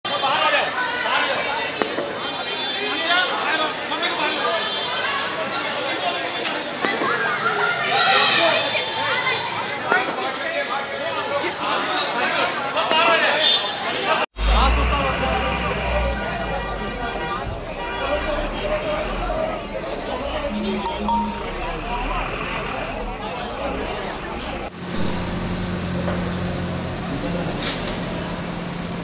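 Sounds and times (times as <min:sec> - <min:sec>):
people chattering: 0:00.1 - 0:14.3, 0:15.0 - 0:22.2.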